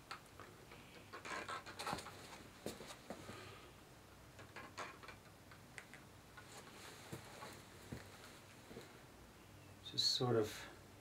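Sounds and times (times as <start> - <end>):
ball rattling and rustling: 0.1 - 3.0.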